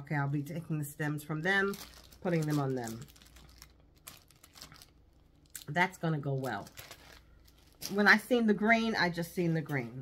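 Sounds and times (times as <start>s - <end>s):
plastic bag crinkling: 1.3s - 8.4s.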